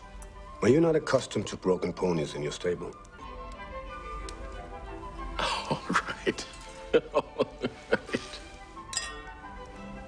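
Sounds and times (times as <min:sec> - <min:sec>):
soft background music: 0:00.0 - 0:10.0
wine glasses clinking: 0:08.9 - 0:09.6.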